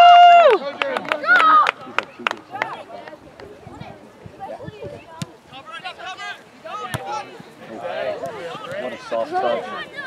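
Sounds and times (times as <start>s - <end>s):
voices calling across field: 0.0s - 10.0s
soccer ball kicked thuds: 6.8s - 7.2s.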